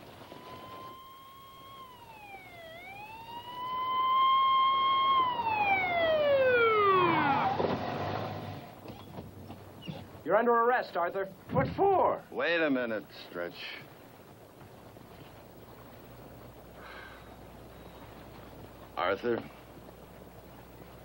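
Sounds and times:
police siren wailing: 0.0 - 8.5.

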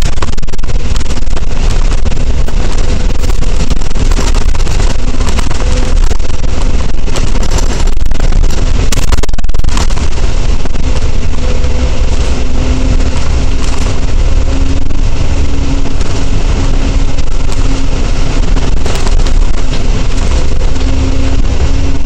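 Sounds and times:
bus engine and road rumble: 0.0 - 22.0
steady whining tone: 0.0 - 22.0.

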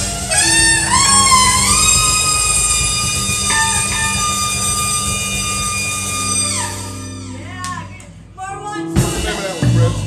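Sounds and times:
saxophone holding long note: 0.0 - 7.5
bass and drum groove: 0.0 - 10.0.

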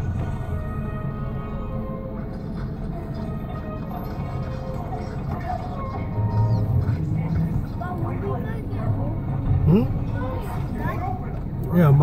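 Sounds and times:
background music: 0.0 - 12.0
low car cabin rumble: 0.0 - 12.0.

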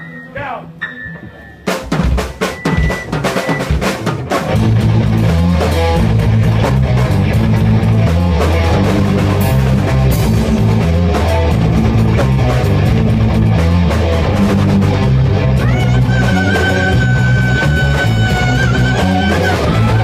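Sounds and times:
live rock band: 0.0 - 20.0
drum hits: 1.2 - 15.2.

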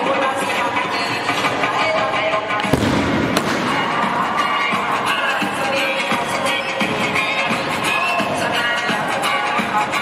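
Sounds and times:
dance music: 0.0 - 10.0
sharp crack: 2.6 - 4.2.

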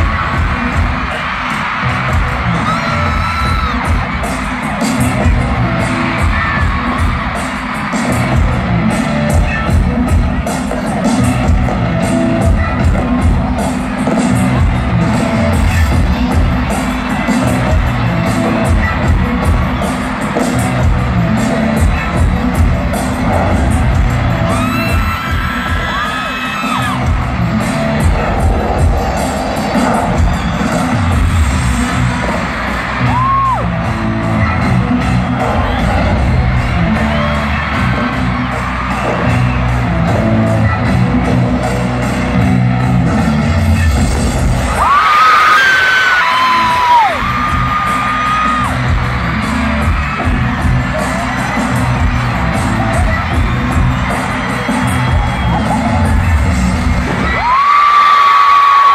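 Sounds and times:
fans screaming: 0.0 - 58.9
loud music with heavy bass beat: 0.0 - 58.9.

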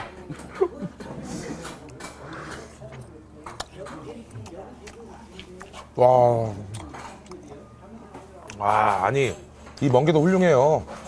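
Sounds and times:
man chewing wetly: 0.9 - 9.8.

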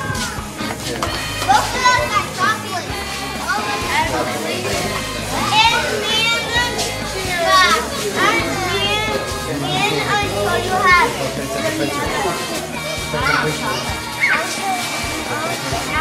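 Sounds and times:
children chattering and squealing: 0.0 - 16.0
music playing: 0.0 - 16.0.

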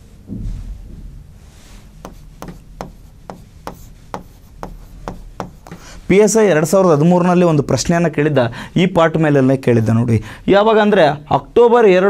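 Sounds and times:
pen scratching on writing board: 2.0 - 5.9.

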